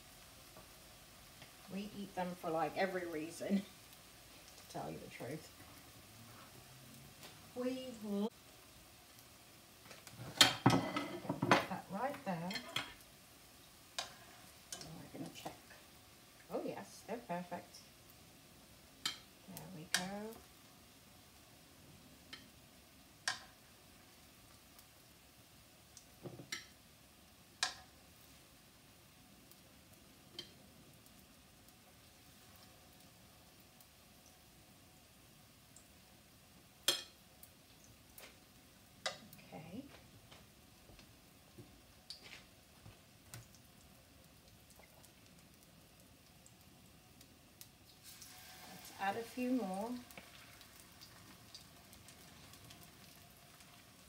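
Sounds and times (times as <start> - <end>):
fritters sizzling in oil: 0.0 - 54.0
metal utensil clicking on pan: 9.9 - 13.0, 14.0 - 15.6, 19.0 - 20.3, 23.2 - 23.6, 26.0 - 26.8, 27.6 - 27.9, 30.3 - 30.6, 36.8 - 37.2, 39.0 - 39.4.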